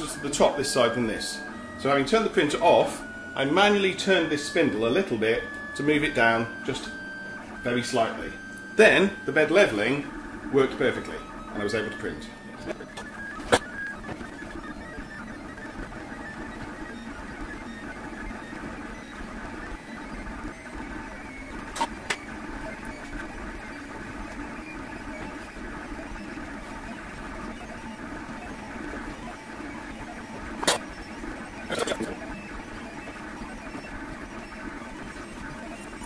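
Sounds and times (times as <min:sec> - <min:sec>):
printer motors whirring: 0:00.0 - 0:36.0.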